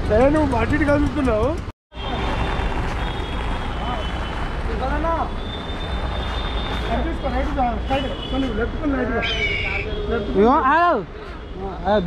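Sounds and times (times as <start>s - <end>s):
street noise: 0.0s - 12.0s
vehicle engines rumbling: 0.0s - 12.0s.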